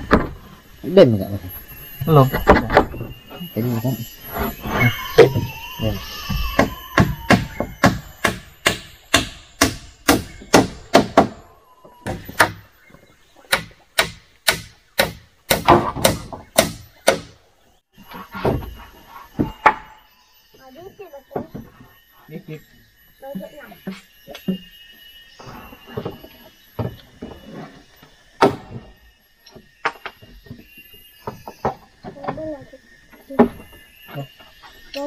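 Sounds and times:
hammering wooden floor planks: 6.3s - 11.4s, 13.5s - 17.4s.

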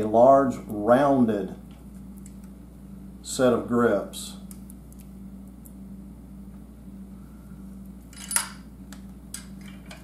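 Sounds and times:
steady low hum: 0.0s - 10.0s
vise handle metal clink: 8.1s - 8.6s.

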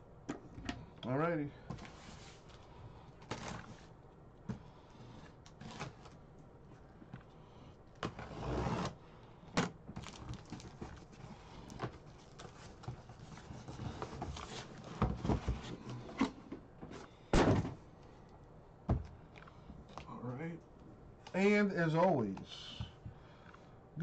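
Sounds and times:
cardboard packaging rustling: 10.0s - 15.8s.

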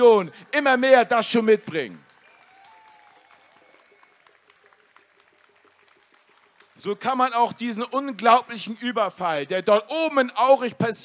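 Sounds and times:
faint crowd applause: 0.0s - 9.1s.

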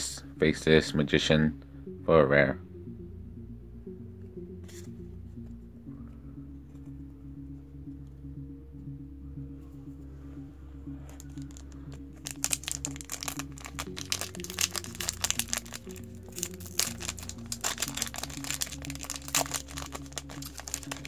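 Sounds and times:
background music: 0.0s - 21.0s
foil wrapper crinkling and tearing: 11.3s - 21.0s.

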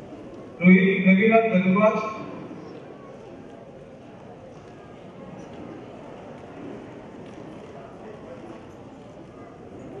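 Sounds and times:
murmur of overlapping voices: 0.0s - 10.0s.

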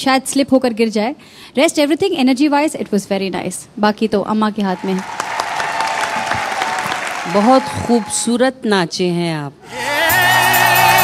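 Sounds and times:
audience applause: 4.8s - 8.2s, 10.1s - 11.0s.

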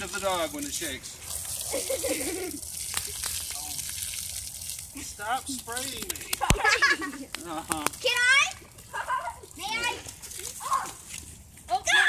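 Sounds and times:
children squealing and shrieking: 11.8s - 12.0s.

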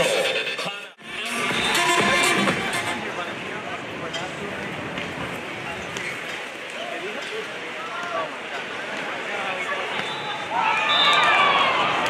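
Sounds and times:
stadium crowd hubbub: 0.0s - 12.0s.

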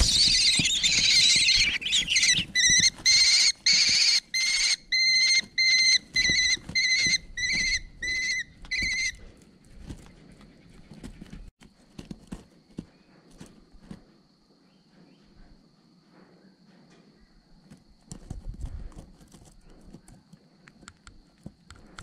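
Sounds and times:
chicks begging shrilly: 0.0s - 9.2s.

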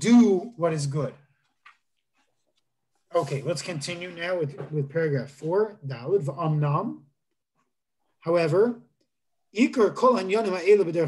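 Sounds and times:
man speaking: 0.0s - 1.3s, 3.0s - 7.2s, 8.2s - 8.9s, 9.5s - 11.0s.

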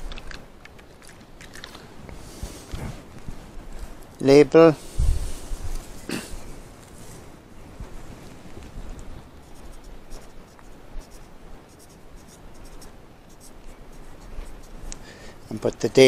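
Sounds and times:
marker pen scratching: 9.4s - 14.9s.

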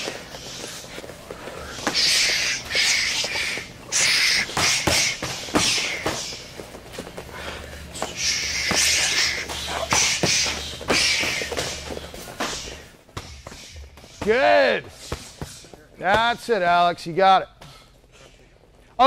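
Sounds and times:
forceful breath bursts: 0.0s - 6.5s, 7.3s - 14.2s
elbows and knees thumping: 0.0s - 16.5s.

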